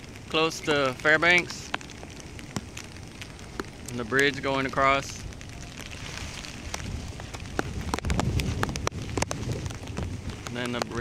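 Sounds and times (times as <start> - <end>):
raindrops ticking close by: 0.0 - 11.0
steady rain: 0.0 - 11.0.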